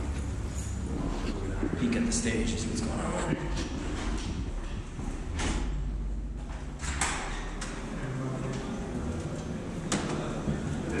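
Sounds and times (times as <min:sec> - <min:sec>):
footsteps: 0:00.0 - 0:06.8
low steady hum: 0:00.0 - 0:11.0.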